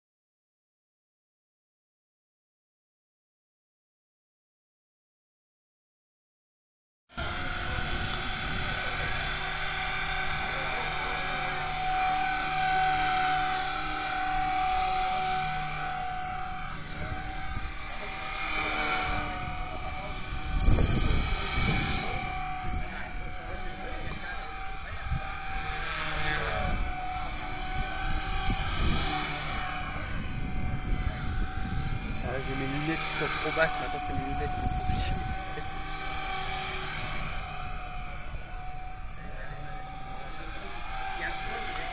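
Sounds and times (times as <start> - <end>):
rc helicopter whine: 7.1 - 41.9
wind rumble on microphone: 7.2 - 41.9.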